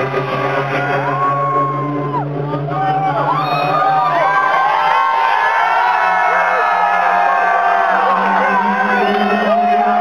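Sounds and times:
electronic dance music: 0.0s - 5.0s, 6.3s - 10.0s.

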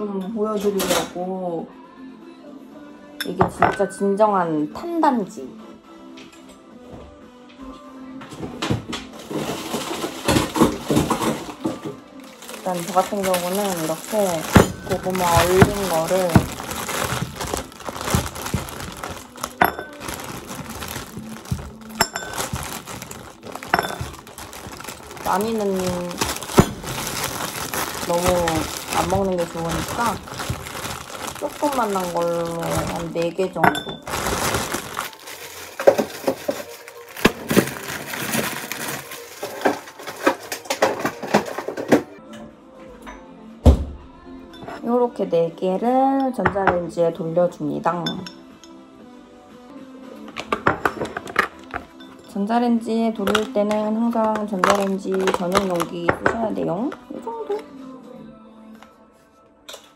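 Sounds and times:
frozen pieces clicking into bowl: 9.2s - 33.3s, 33.9s - 41.6s, 53.2s - 56.4s
plastic bag crinkling: 9.2s - 40.5s, 53.2s - 56.1s.

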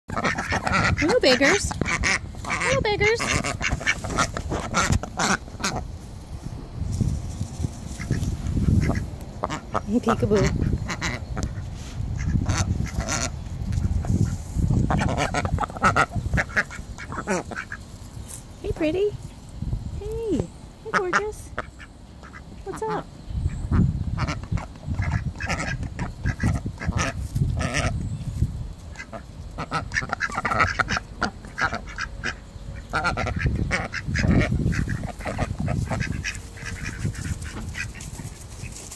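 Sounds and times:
ducks quacking: 0.1s - 6.0s, 8.0s - 17.9s, 20.8s - 28.0s, 28.9s - 38.9s.

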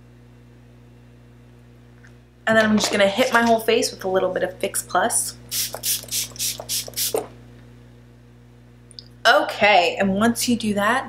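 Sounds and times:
spray bottle spritzes: 5.5s - 7.3s.

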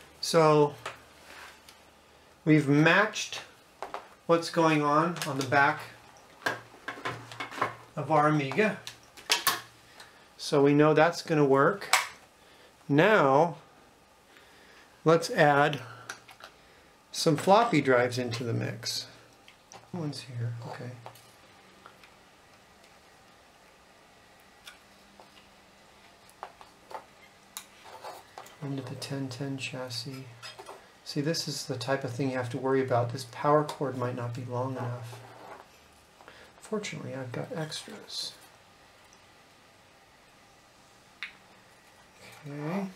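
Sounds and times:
faint low hum: 0.0s - 42.9s.

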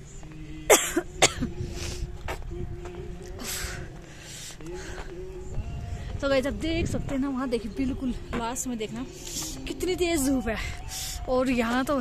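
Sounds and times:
person coughing: 0.7s - 1.5s.

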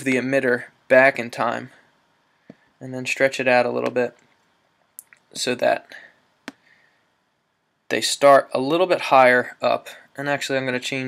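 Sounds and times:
person speaking: 2.8s - 4.3s, 5.0s - 6.2s, 7.9s - 11.0s.

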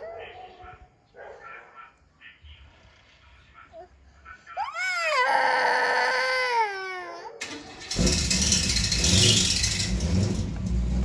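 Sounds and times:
long wailing cry: 4.6s - 7.4s
car engine starting and running: 7.4s - 11.0s.

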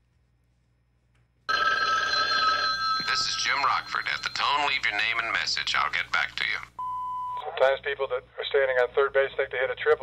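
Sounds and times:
telephone ringing: 1.5s - 5.3s.

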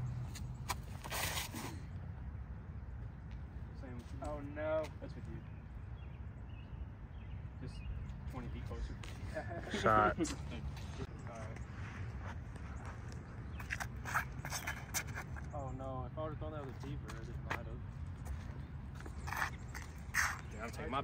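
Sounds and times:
low outdoor rumble: 0.0s - 21.0s
short scrapes: 0.4s - 1.9s, 13.6s - 15.5s, 19.2s - 20.6s.

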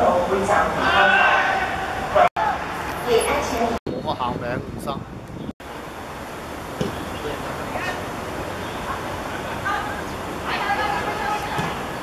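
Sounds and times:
outdoor noise: 0.0s - 12.0s
players shouting: 0.7s - 2.8s, 8.8s - 12.0s.

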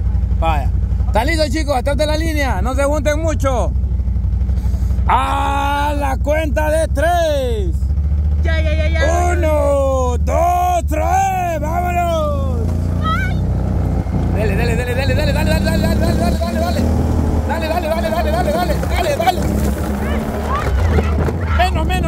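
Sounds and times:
quad bike engine rumbling: 0.0s - 22.0s
voices shouting: 8.4s - 22.0s.

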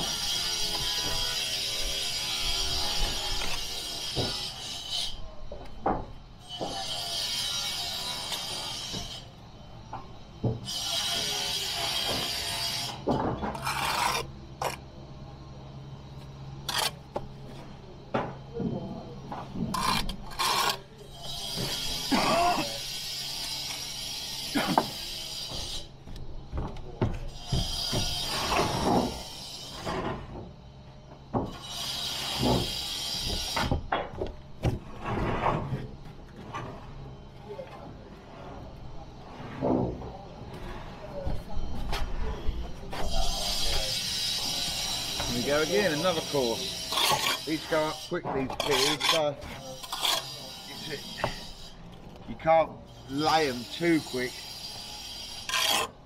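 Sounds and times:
trowel scraping mortar: 10.6s - 14.8s, 16.6s - 17.7s, 19.6s - 25.9s, 34.7s - 36.9s, 42.9s - 51.7s, 52.3s - 56.0s
bricks and trowel knocking: 24.6s - 29.2s.

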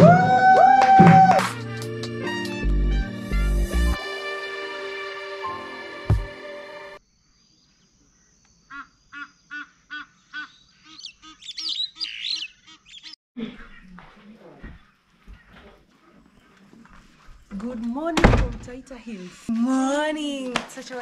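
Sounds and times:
birds calling: 7.5s - 17.3s.

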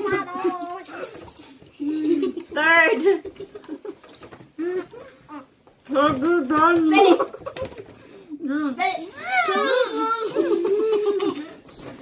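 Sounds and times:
children talking garbled: 0.0s - 3.3s, 4.6s - 7.5s, 8.3s - 12.0s.

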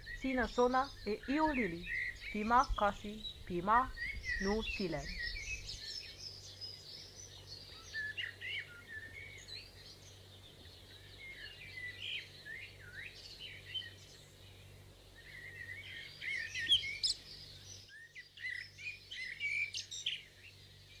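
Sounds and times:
birds chirping and whistling: 0.0s - 14.6s, 15.2s - 21.0s
faint background hiss: 0.0s - 21.0s.

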